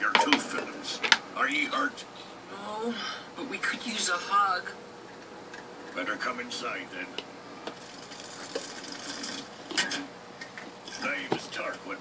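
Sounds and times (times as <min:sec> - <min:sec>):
aquarium air stone bubbling: 0:07.7 - 0:09.7.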